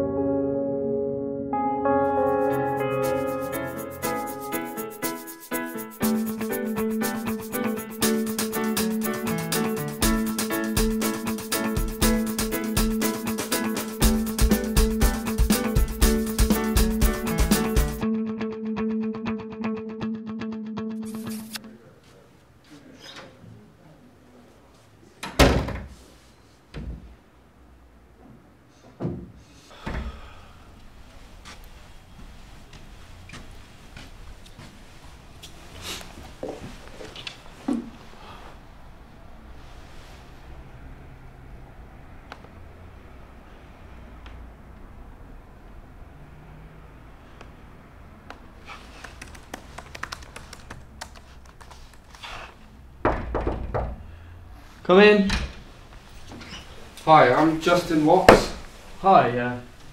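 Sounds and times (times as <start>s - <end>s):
laptop keyboard typing: 48.7s - 52.3s.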